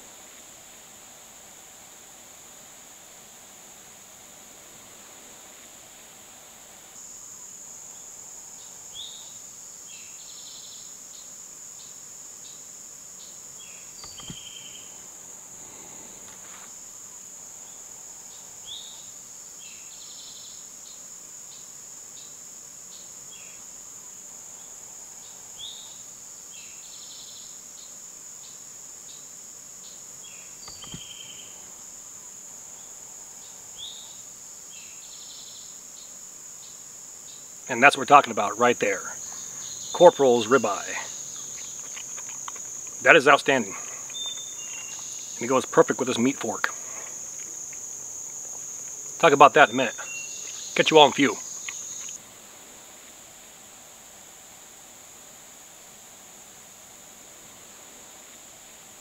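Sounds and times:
high-pitched insect drone: 0:05.6 - 0:52.2
short high insect chirps: 0:07.0 - 0:52.2.

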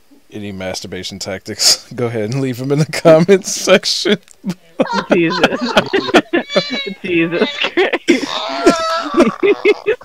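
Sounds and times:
people laughing hard: 0:04.5 - 0:10.0.

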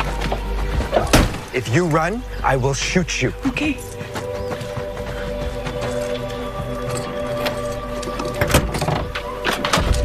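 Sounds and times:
film score drone: 0:00.0 - 0:10.0.

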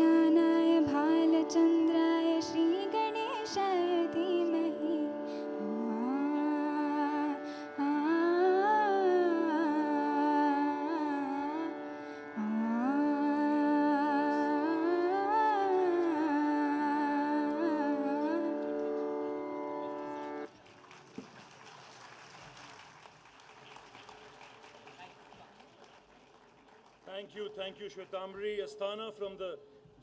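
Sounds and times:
woman singing wordless melody: 0:00.0 - 0:18.8.

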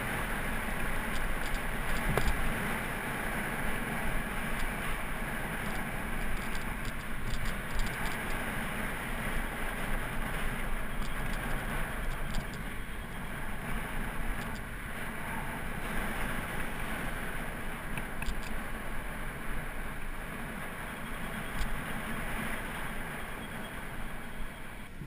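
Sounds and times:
car traffic: 0:00.0 - 0:25.0
road rumble: 0:00.0 - 0:25.0
faint light ticks: 0:01.1 - 0:02.5, 0:05.7 - 0:08.4, 0:11.0 - 0:12.7, 0:14.3 - 0:14.7, 0:17.9 - 0:18.6, 0:21.4 - 0:21.8.

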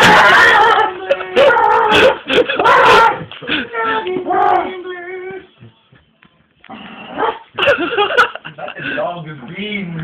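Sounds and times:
person imitating dog whining: 0:00.2 - 0:05.4.

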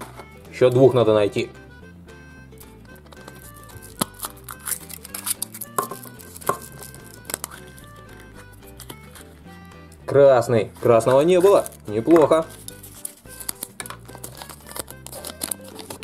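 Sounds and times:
soft background music: 0:00.0 - 0:16.0
plastic capsule snapping open: 0:02.6 - 0:08.2, 0:11.5 - 0:16.0
wrapper clicks and crinkles: 0:03.0 - 0:09.3, 0:11.0 - 0:16.0.

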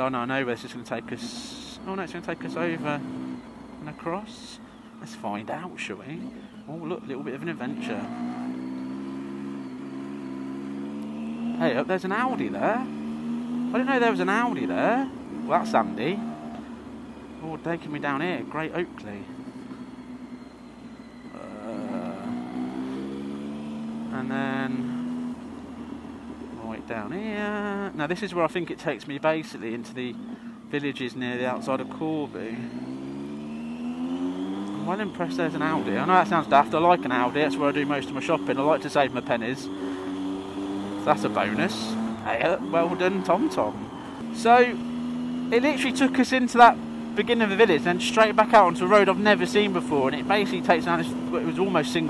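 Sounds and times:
motorcycle engine hum: 0:00.0 - 0:52.0.

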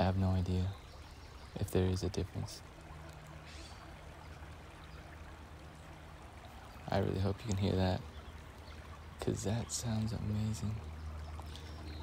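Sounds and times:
creek water flowing: 0:00.0 - 0:12.0
low steady hum: 0:00.0 - 0:12.0.

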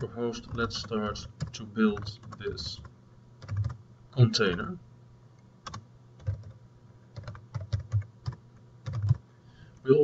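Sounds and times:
keyboard typing: 0:00.4 - 0:03.8, 0:05.6 - 0:06.6, 0:07.2 - 0:09.2.

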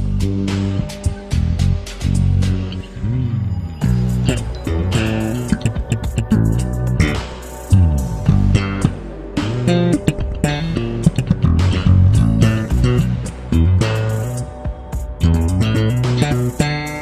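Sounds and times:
slap bass guitar notes: 0:00.0 - 0:17.0.

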